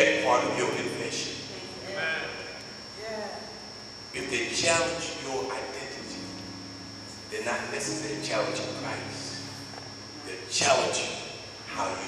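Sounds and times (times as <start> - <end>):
man speaking: 0.0 - 2.6, 4.2 - 6.3, 7.3 - 9.5, 10.2 - 12.0
high-pitched whine: 0.0 - 12.0
faint wavering voice: 0.3 - 3.6.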